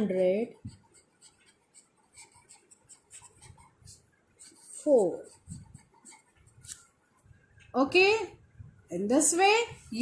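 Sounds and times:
pen scratching on paper: 0:00.0 - 0:06.9.

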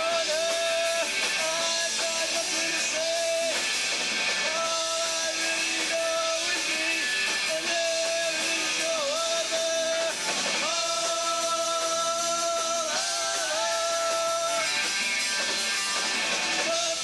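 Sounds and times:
punk rock band playing live: 0:00.0 - 0:17.0.

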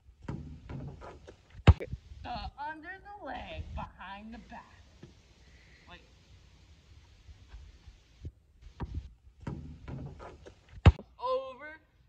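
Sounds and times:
basketball thuds on ground: 0:00.2 - 0:01.9, 0:08.7 - 0:11.1
loud thump: 0:08.8 - 0:11.0.

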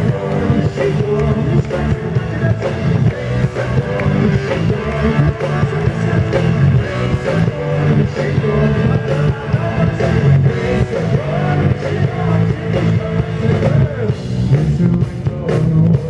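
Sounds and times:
bass guitar: 0:00.0 - 0:16.0
drum kit: 0:00.0 - 0:16.0
electric guitar: 0:00.0 - 0:16.0.

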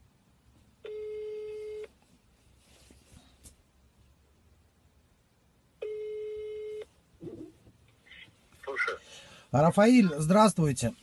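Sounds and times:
phone ringback tone: 0:00.9 - 0:01.9, 0:05.8 - 0:06.9.

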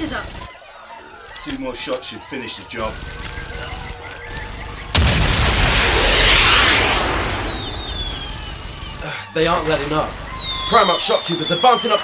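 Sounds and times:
mortar explosion blast: 0:04.9 - 0:08.6
faint falling whistles: 0:05.7 - 0:09.0, 0:10.3 - 0:12.0.

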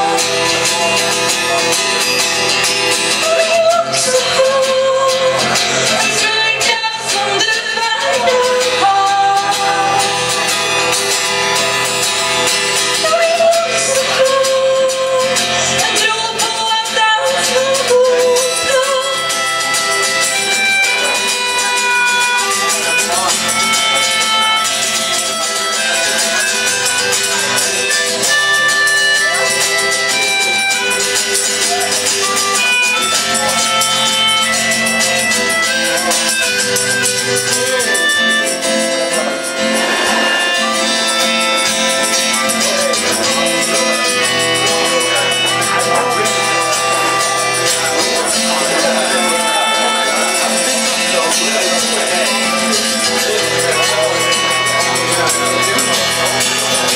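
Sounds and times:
acoustic guitar strumming: 0:00.0 - 0:56.9
woman singing: 0:03.2 - 0:10.2, 0:13.0 - 0:19.2
melodica playing held notes: 0:17.9 - 0:56.9.

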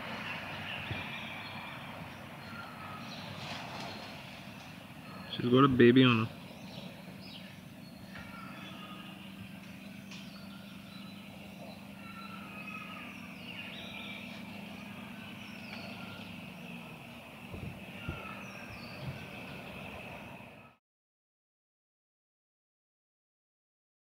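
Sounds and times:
small birds chirping: 0:00.0 - 0:20.8
steady low hum: 0:00.0 - 0:20.8.

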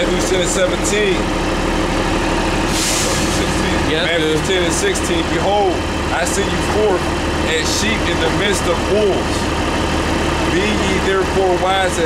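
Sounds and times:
bus engine idling: 0:00.0 - 0:12.0
air hiss: 0:02.7 - 0:03.6.

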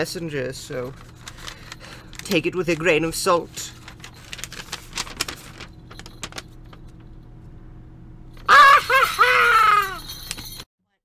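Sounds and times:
high-pitched voice crying: 0:08.5 - 0:10.1
small bells jingling: 0:08.8 - 0:10.7.

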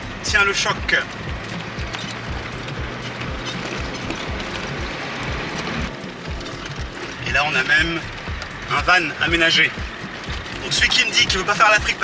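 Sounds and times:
background music: 0:00.0 - 0:12.0
bumps and rattles: 0:00.0 - 0:12.0
road noise inside vehicle: 0:00.0 - 0:12.0.

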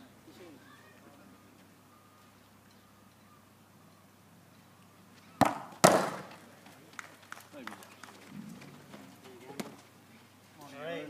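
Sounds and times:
football kicked hard: 0:05.4 - 0:06.3
ball striking hard surface: 0:05.4 - 0:06.4
voices: 0:06.1 - 0:11.0.

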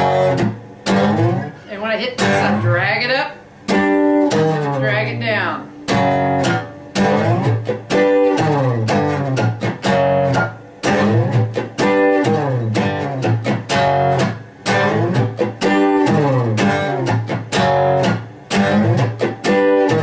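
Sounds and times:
acoustic guitar blues chords: 0:00.0 - 0:20.0.

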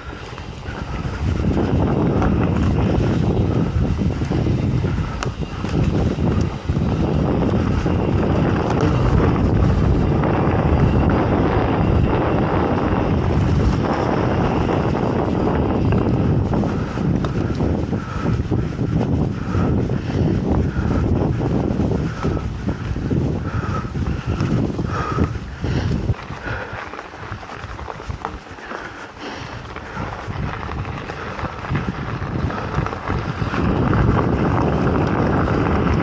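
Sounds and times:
bike tyres rumbling on dirt: 0:00.0 - 0:36.0
wind buffeting microphone: 0:00.0 - 0:36.0
bike clicks and knocks: 0:15.9 - 0:18.4.

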